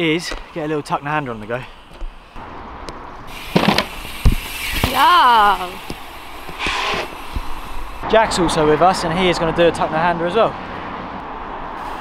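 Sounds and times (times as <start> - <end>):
rushing tyre and air noise: 0.1 - 12.0
bike landing thump: 3.4 - 5.0
bike tyres clattering on ramp: 3.4 - 5.0.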